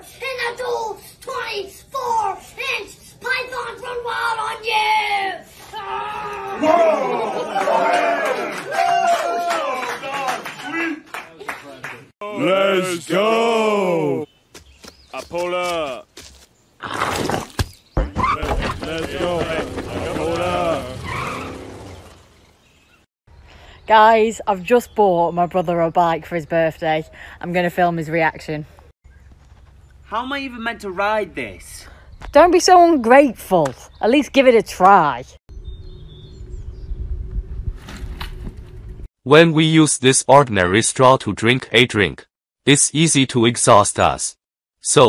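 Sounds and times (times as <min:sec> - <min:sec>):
shouted voices: 0:04.3 - 0:11.0, 0:12.2 - 0:14.2, 0:18.1 - 0:21.5
man calling out: 0:12.2 - 0:14.3, 0:18.4 - 0:21.1
cartoon car sound effects: 0:18.2 - 0:22.3
bicycle rumbling over grass: 0:18.4 - 0:22.7.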